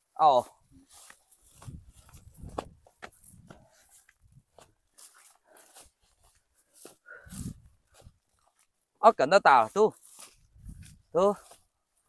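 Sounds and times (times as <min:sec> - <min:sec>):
footsteps in dry grass: 0:00.0 - 0:12.0.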